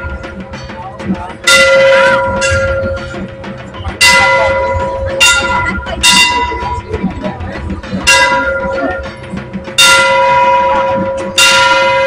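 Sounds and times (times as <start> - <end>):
crowd murmuring: 0.0 - 12.0
large brass bell ringing: 1.4 - 7.1, 7.9 - 12.0.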